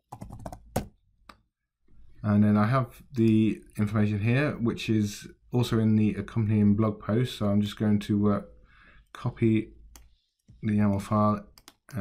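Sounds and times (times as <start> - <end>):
computer keyboard typing: 0.1 - 0.9, 10.9 - 12.0.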